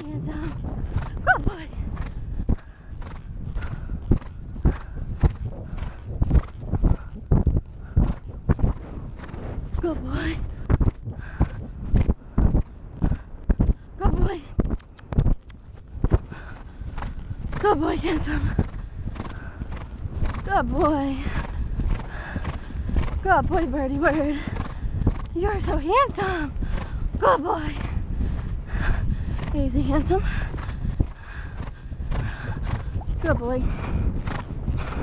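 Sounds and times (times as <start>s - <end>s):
horse hoofbeats on turf: 0.0s - 35.0s
wind buffeting microphone: 0.0s - 35.0s.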